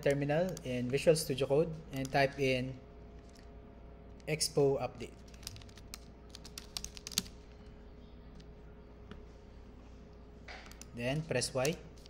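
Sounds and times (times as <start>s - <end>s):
keyboard typing: 5.2s - 7.7s, 10.5s - 12.0s.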